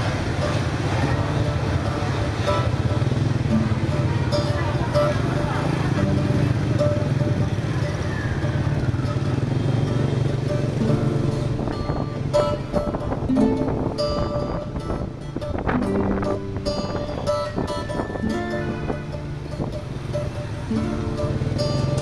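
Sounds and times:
motorbike engine: 0.0 - 22.0
other motorbikes: 0.0 - 22.0
street noise: 0.0 - 22.0.

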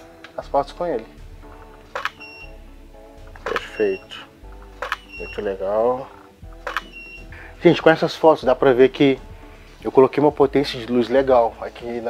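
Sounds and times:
background music: 0.0 - 12.0
camera shutter click: 1.9 - 2.3, 3.4 - 3.8, 4.8 - 5.2, 6.6 - 7.1.

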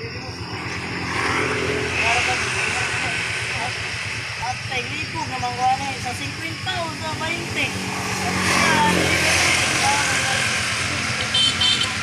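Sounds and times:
rushing traffic noise: 0.0 - 12.0
motor tricycle engine idling: 10.9 - 12.0.

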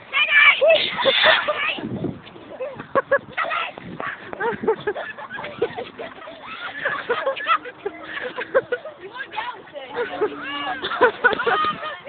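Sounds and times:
people laughing: 0.6 - 1.9, 2.5 - 12.0
people squealing: 5.0 - 9.4, 10.0 - 12.0.

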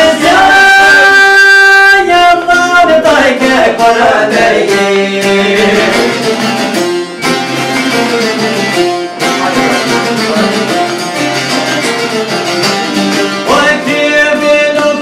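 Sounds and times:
man singing loudly: 0.0 - 6.5, 13.4 - 15.0
lutes strumming fast: 3.1 - 15.0.

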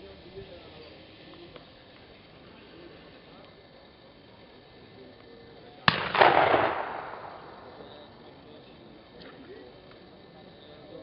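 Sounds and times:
gunshot with rolling echo: 5.8 - 7.8.

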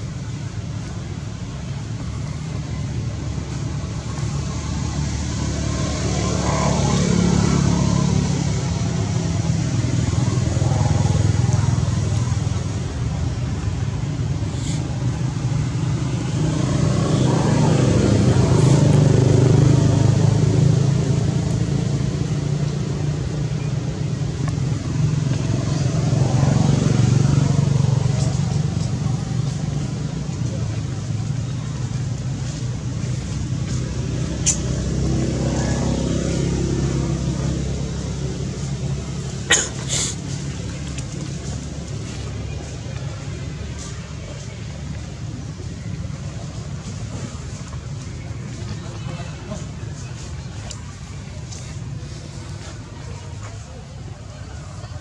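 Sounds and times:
vehicles passing on road: 0.0 - 55.0.

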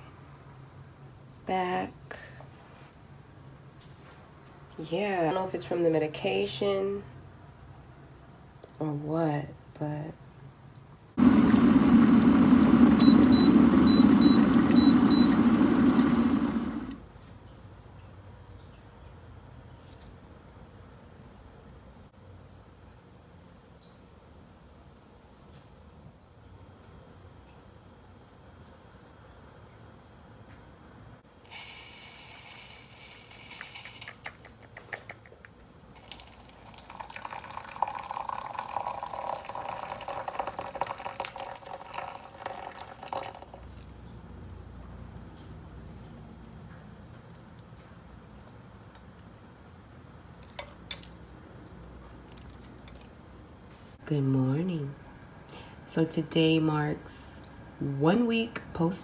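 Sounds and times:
water poured into mug: 36.0 - 43.9.

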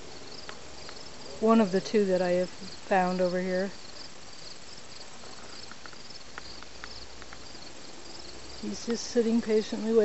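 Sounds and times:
faint background hiss: 0.0 - 10.0
insects chirping: 0.0 - 10.0.

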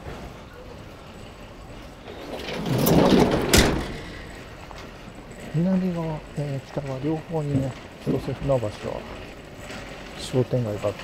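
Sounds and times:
truck cargo door rattling: 2.0 - 4.6
cargo door banging shut: 2.1 - 4.4.

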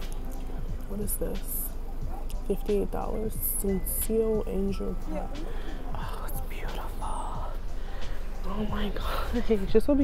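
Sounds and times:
steady low rumble: 0.0 - 10.0
woman whispering: 4.4 - 9.7.

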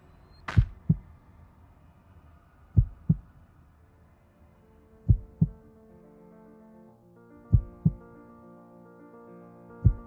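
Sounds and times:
heartbeat thumps: 0.5 - 1.1, 2.8 - 3.3, 5.1 - 5.6, 7.5 - 8.0.

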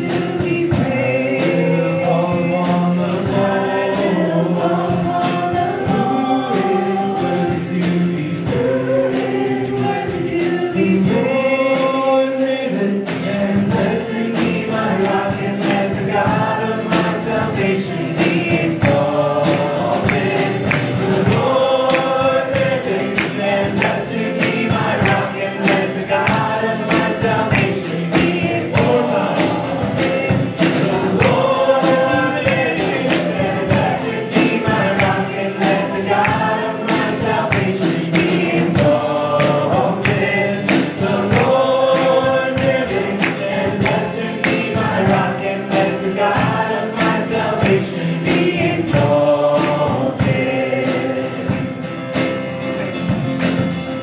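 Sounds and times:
acoustic guitar: 0.0 - 54.0
drum kit steady beat: 0.0 - 54.0
keyboard: 0.0 - 54.0
voices singing together: 0.0 - 54.0
worship band playing: 0.0 - 54.0.

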